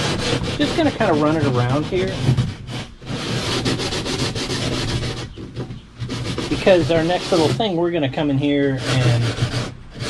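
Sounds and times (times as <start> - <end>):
sandpaper rubbing on wood: 0.0 - 10.0.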